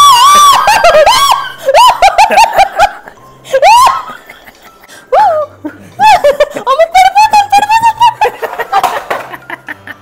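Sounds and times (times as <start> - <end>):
woman shrieking: 0.0 - 2.2, 3.5 - 4.2
woman laughing and giggling: 0.1 - 10.0.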